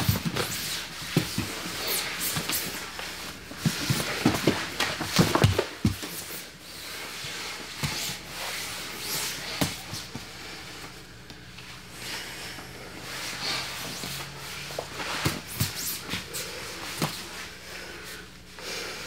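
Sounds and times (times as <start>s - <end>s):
bodies thumping on gym mats: 0.0s - 2.9s, 3.5s - 6.3s, 14.9s - 16.3s.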